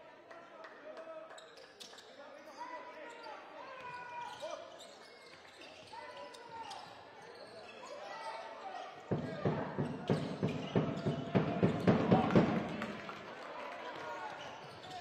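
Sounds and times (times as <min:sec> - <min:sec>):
crowd noise: 0:02.6 - 0:15.0
basketball bouncing on hardwood: 0:09.1 - 0:12.6
players shouting: 0:09.1 - 0:15.0.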